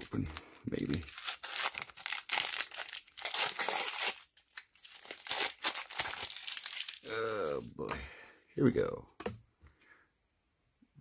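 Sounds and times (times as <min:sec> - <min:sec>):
wrapper tearing and crinkling: 0:00.0 - 0:07.7.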